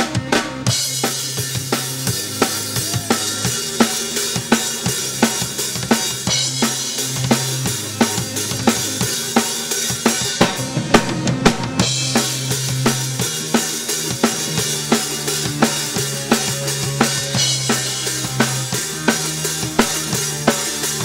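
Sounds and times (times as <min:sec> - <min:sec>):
drum kit beat: 0:00.0 - 0:21.0
low keyboard notes: 0:00.0 - 0:21.0.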